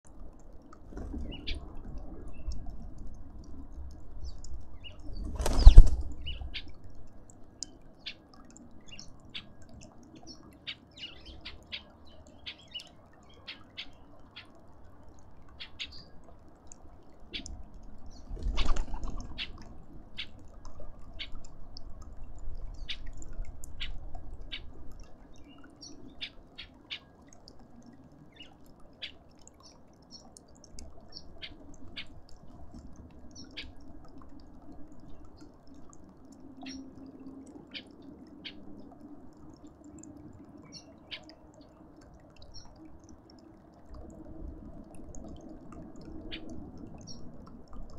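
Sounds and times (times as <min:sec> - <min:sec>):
bird wings flapping: 0:05.2 - 0:06.3, 0:18.3 - 0:19.4
birds chirping: 0:08.8 - 0:14.6.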